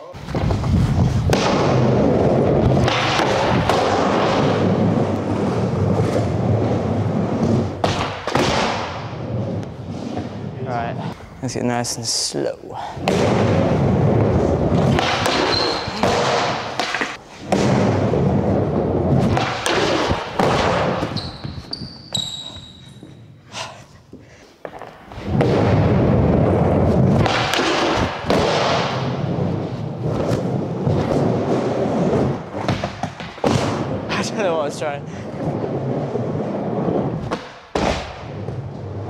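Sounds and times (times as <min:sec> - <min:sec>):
skateboard thudding and grinding: 0:00.2 - 0:10.6, 0:13.0 - 0:21.9, 0:24.6 - 0:39.0
skateboard wheels rolling: 0:00.2 - 0:10.7, 0:13.0 - 0:23.4, 0:24.5 - 0:39.0.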